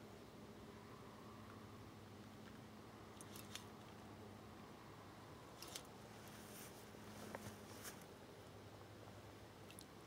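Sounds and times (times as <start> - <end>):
faint sharp clicks: 9.6 - 9.9.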